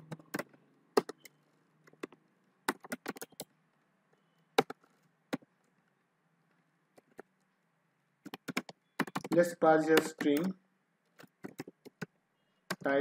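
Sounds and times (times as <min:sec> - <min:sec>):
computer keyboard typing: 0:00.0 - 0:03.6, 0:08.2 - 0:10.6, 0:11.2 - 0:13.0.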